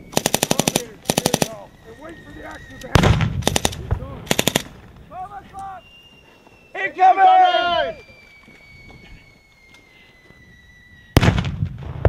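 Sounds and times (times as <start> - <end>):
falling whistle: 0.0 - 0.4, 1.6 - 3.0, 5.4 - 11.3
sharp blast: 11.1 - 12.0.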